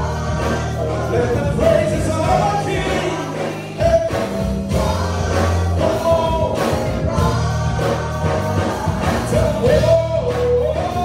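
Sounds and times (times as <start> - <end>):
bass: 0.0 - 11.0
drums: 0.0 - 11.0
group singing gospel: 0.0 - 11.0
live band: 0.0 - 11.0.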